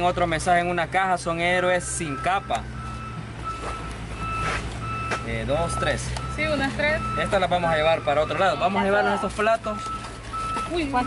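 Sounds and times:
reversing alarm beeping: 1.7s - 11.0s.

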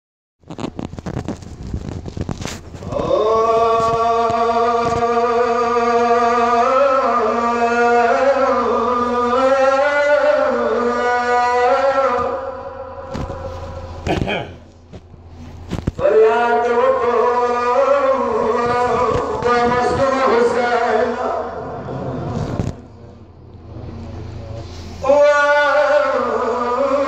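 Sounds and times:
low hum: 0.5s - 27.0s
man singing over loudspeaker: 2.8s - 14.6s, 16.0s - 23.0s, 24.6s - 27.0s.

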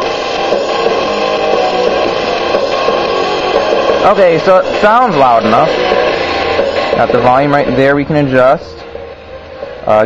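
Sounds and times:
music from small portable speakers: 0.0s - 10.0s.

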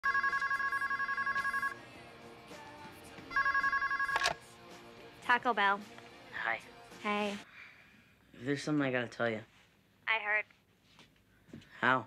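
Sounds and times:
cordless telephone ringing: 0.0s - 1.8s, 3.3s - 4.4s.

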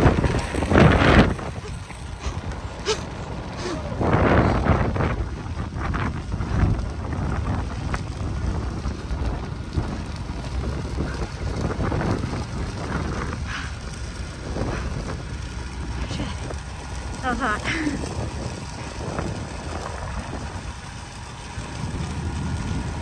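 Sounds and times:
wildfire rushing and crackling: 0.0s - 23.0s
wind buffeting microphone: 0.0s - 23.0s.

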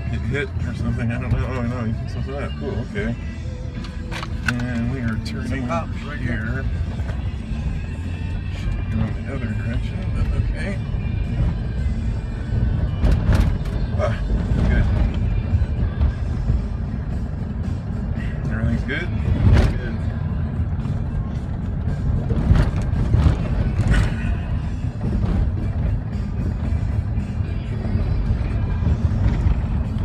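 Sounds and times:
road and engine rumble: 0.0s - 30.0s.

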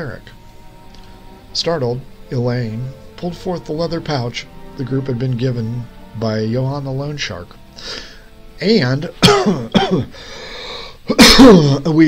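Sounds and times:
breathy intake: 7.8s - 8.4s, 10.1s - 11.2s
man coughing: 9.2s - 10.2s, 11.1s - 11.8s.

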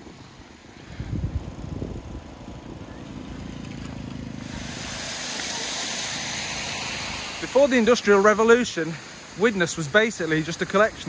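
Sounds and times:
broad hiss: 0.0s - 11.0s
motor engine humming: 1.0s - 8.4s.

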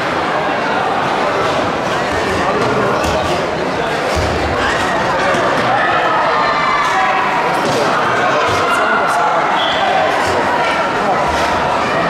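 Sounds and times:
crowd chatter echoing in hall: 0.0s - 12.0s.

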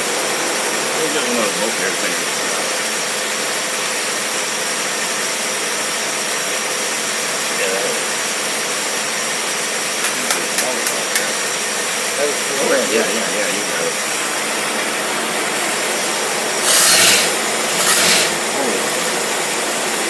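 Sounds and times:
engine running with high whine: 0.0s - 20.0s.

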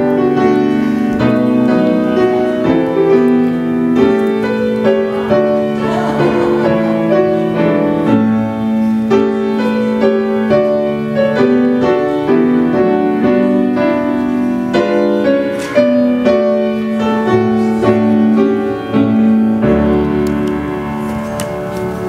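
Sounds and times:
grand piano playing chords: 0.0s - 22.0s.

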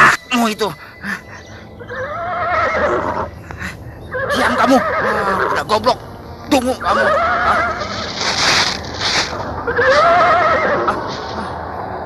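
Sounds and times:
breathy noise: 0.0s - 1.9s, 3.2s - 4.3s
horse whinnying: 1.9s - 3.3s, 4.1s - 5.6s, 6.9s - 8.1s, 9.7s - 11.1s.

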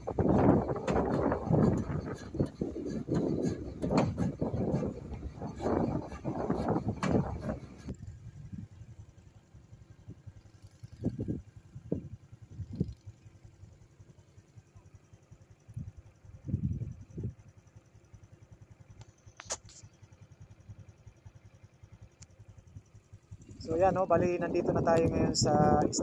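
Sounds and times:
vehicle rumble: 0.0s - 26.0s.

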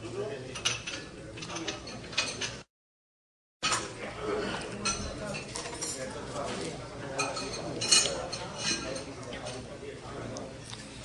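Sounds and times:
glassware clinking: 7.1s - 9.5s.

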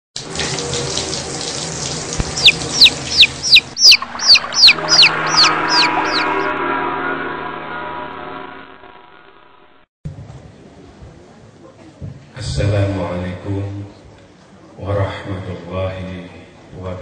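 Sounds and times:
running water: 0.2s - 6.5s
bird whistling calls: 2.4s - 6.4s
hum of held tones: 2.5s - 9.8s.

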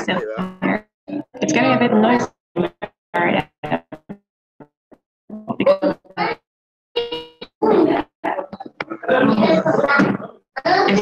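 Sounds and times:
garbled voice over video call: 0.0s - 2.3s, 7.6s - 11.0s.

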